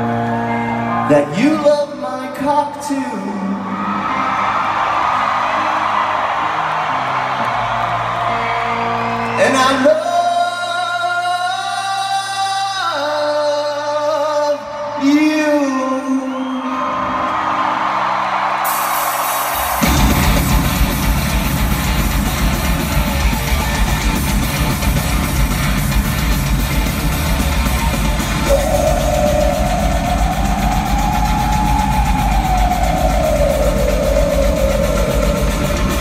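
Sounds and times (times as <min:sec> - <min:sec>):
rising and falling melodic line: 0:17.6 - 0:36.0
cymbals: 0:18.6 - 0:36.0
metal band playing live: 0:18.6 - 0:36.0.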